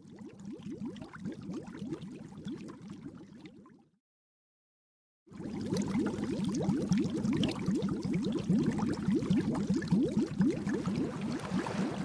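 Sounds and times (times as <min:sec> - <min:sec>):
bubbling water blips: 0:00.0 - 0:03.9, 0:05.3 - 0:12.0.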